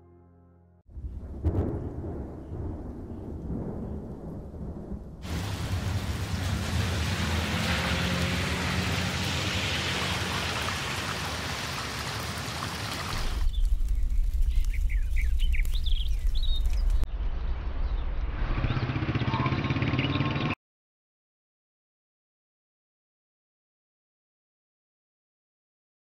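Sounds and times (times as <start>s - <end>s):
rain on wet ground: 3.4s - 17.1s
birds chirping: 10.0s - 17.1s, 18.6s - 20.5s
deep low rumble: 13.4s - 18.9s.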